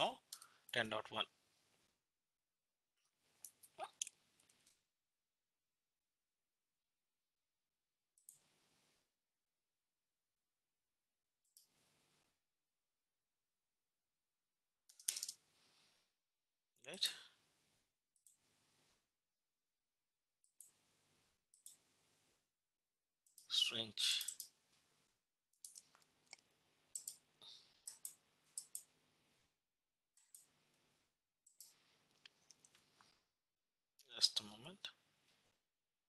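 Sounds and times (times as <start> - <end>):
mouse and keyboard clicks: 14.9 - 15.4, 25.6 - 27.2, 27.8 - 28.9
person speaking: 34.0 - 35.0.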